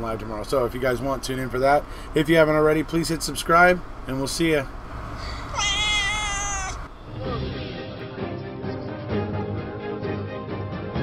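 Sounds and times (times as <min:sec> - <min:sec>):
cat meowing: 0:05.2 - 0:07.0.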